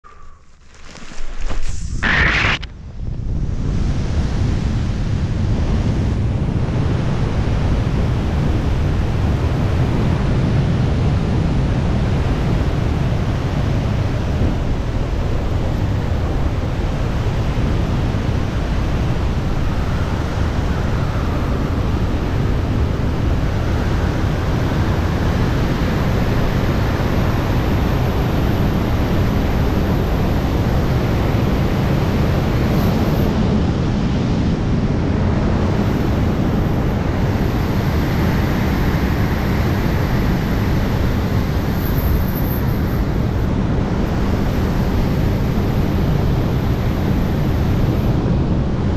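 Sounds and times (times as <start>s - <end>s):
wind buffeting microphone: 0.0s - 48.9s.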